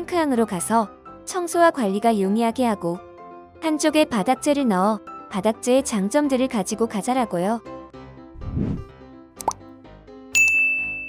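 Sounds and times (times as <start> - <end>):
light background music: 0.0 - 11.0
quick rising pop: 8.4 - 9.6
bright ding: 10.4 - 11.0.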